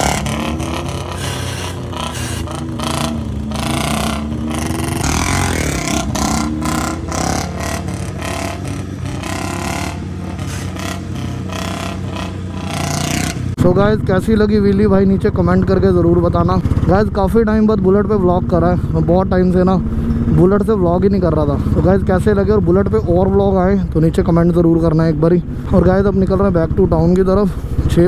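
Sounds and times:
motorcycle engines revving: 0:00.0 - 0:28.0
sport bike engine: 0:00.0 - 0:28.0.

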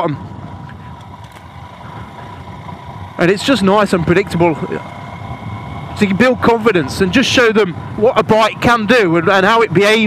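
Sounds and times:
motorcycle engine running: 0:00.0 - 0:10.0
road noise on dirt lane: 0:00.0 - 0:10.0.

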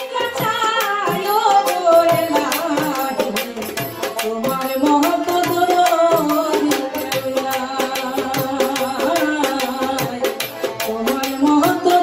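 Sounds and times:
hand drum: 0:00.0 - 0:12.0
harmonium melody: 0:00.0 - 0:12.0
rattling percussion: 0:00.0 - 0:12.0.

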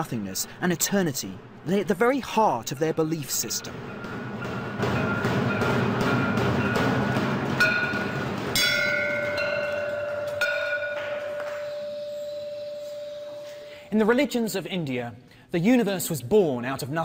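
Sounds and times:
brass bell ringing: 0:01.9 - 0:13.9.

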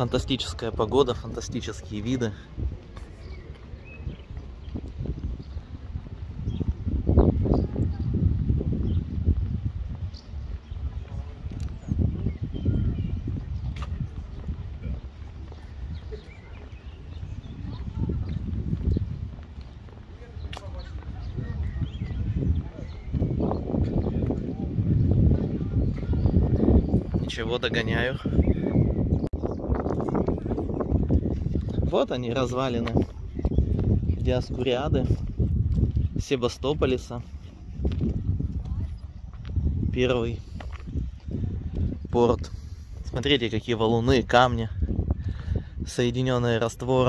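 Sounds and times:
footsteps on brick paving: 0:00.0 - 0:47.0
wind and handling rumble: 0:00.0 - 0:47.0.

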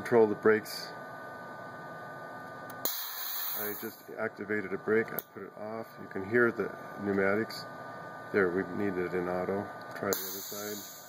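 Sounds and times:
electrical hum: 0:00.0 - 0:11.0
hiss of air: 0:02.9 - 0:03.9, 0:10.2 - 0:11.0.

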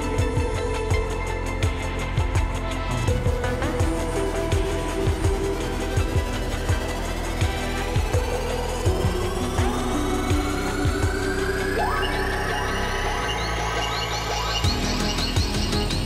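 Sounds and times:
electronic music with low beat: 0:00.0 - 0:16.0.

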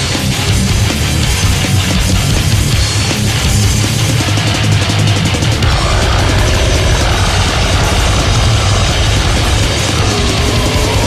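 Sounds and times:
harsh distorted grindcore noise: 0:00.0 - 0:11.0
low rumble: 0:05.6 - 0:11.0.

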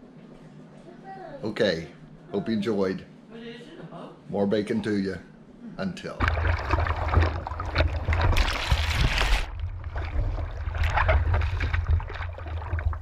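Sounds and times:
sea water splashing: 0:06.2 - 0:13.0.

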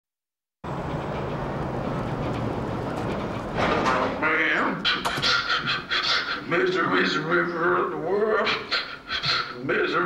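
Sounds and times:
steady rumbling noise: 0:00.6 - 0:05.8.

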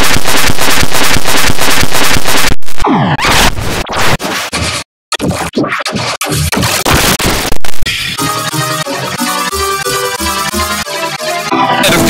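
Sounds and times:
choppy distorted scratching bursts: 0:00.0 - 0:07.9.

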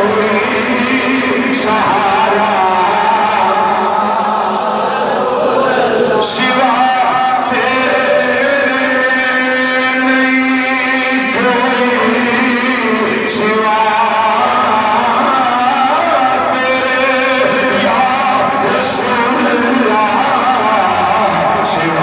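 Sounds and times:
men chanting slow melody: 0:00.0 - 0:22.0.

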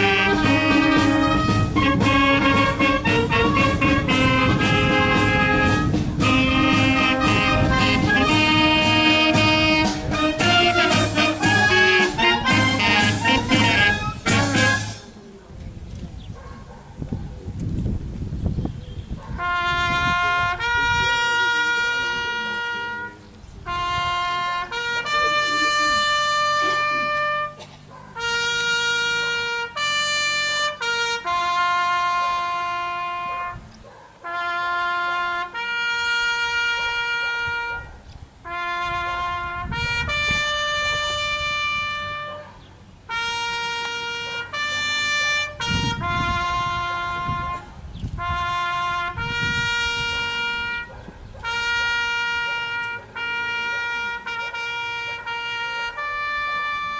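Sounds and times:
solo trumpet bugle call: 0:00.0 - 0:15.1, 0:19.4 - 0:56.9.

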